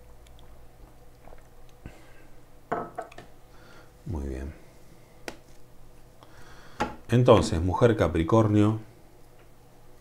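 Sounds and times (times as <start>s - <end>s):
person sipping a drink: 0.3s - 2.4s.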